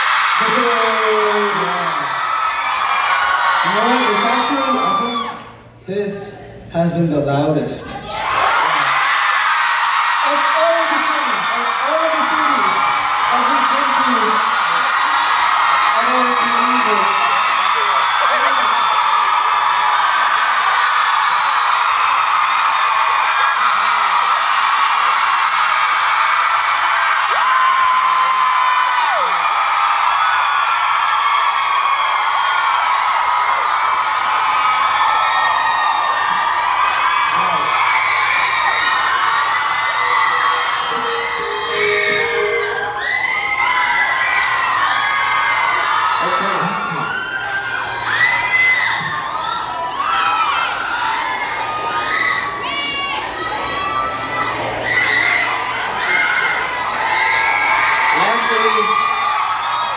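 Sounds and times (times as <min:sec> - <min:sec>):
audience screaming and cheering: 0:00.0 - 0:07.0, 0:07.7 - 0:59.9.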